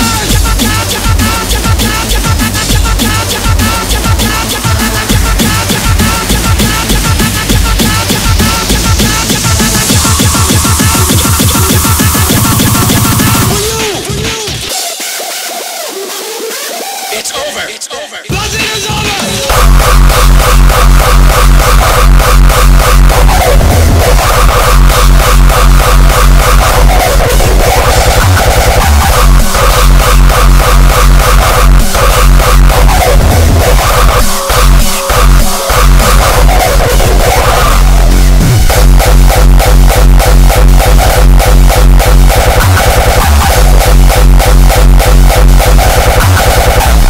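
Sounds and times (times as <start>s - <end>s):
heavy distorted kick drum: 0.0s - 14.8s, 18.3s - 47.0s
hardcore electronic music: 0.0s - 47.0s
buzzing synth riff: 19.5s - 47.0s.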